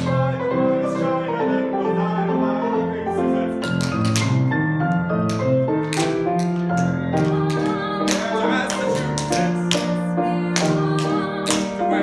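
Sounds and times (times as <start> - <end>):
piano-led music: 0.0 - 12.0.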